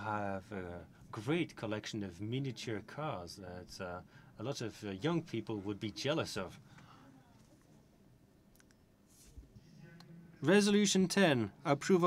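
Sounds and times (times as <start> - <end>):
soft clicks: 8.5 - 8.8.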